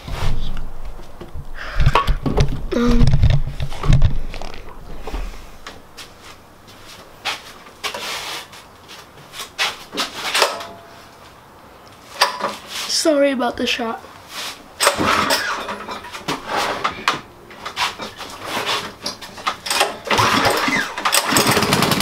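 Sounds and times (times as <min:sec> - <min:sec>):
rustling: 0:00.0 - 0:12.9.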